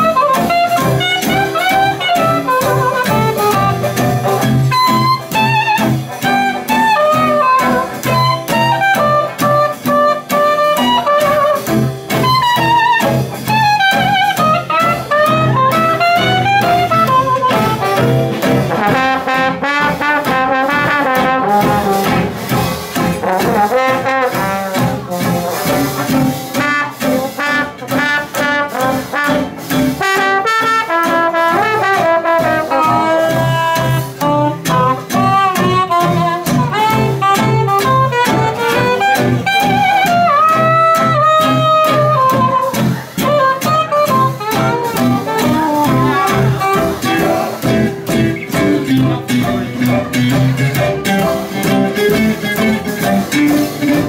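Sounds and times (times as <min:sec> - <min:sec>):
guitar: 0:00.0 - 0:54.0
string bass: 0:00.0 - 0:54.0
trombone: 0:00.0 - 0:54.0
soprano saxophone: 0:12.2 - 0:18.0, 0:32.0 - 0:47.4.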